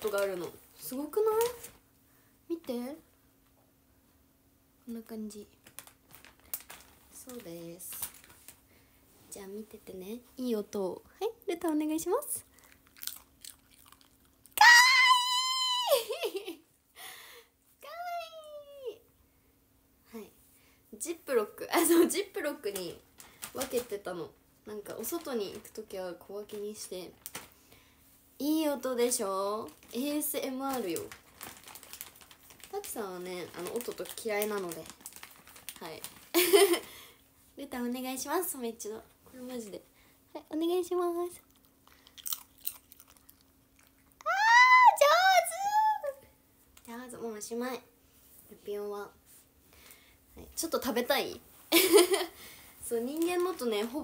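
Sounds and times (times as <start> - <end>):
dog chewing: 12.6 - 14.6, 41.4 - 44.2
dog crunching a hard treat: 12.6 - 14.6, 41.4 - 44.2.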